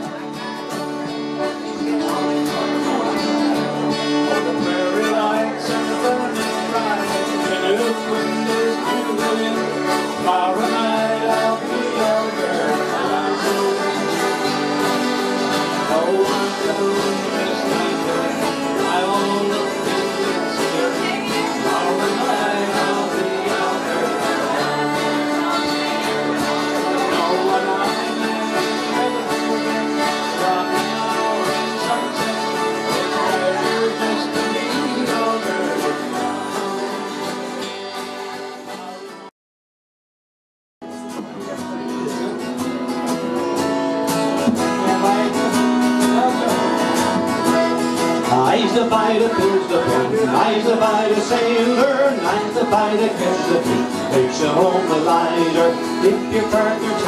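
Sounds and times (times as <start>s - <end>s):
strummed acoustic guitars: 0.0s - 39.3s, 40.8s - 57.0s.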